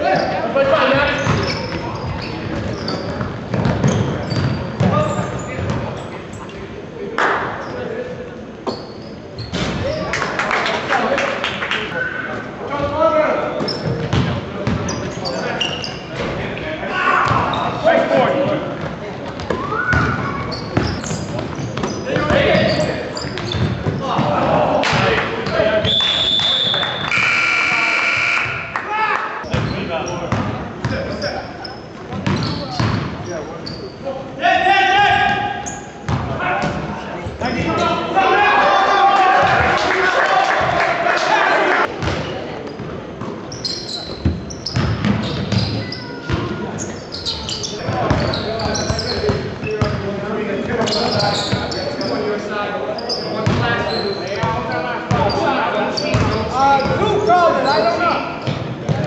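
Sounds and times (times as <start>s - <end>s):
sneaker squeaks: 0.0s - 6.6s, 7.5s - 7.9s, 8.6s - 10.1s, 12.0s - 16.4s, 17.2s - 17.8s, 19.3s - 24.3s, 25.4s - 28.7s, 29.4s - 34.1s, 35.2s - 38.1s, 42.0s - 50.0s, 50.8s - 59.0s
players shouting: 37.6s - 41.9s.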